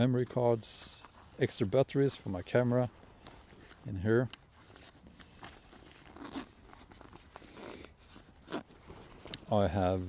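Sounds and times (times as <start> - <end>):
fabric rustling: 0.0 - 10.0
zipper rasping: 4.5 - 9.5.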